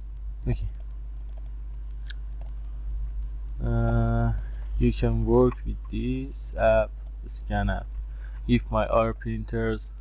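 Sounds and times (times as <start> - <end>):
computer mouse clicks: 0.0 - 10.0
low electrical hum: 0.0 - 10.0.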